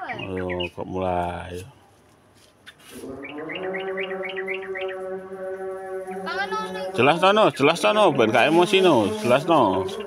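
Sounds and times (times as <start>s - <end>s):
pigeon calling: 0.0s - 0.9s, 2.6s - 10.0s.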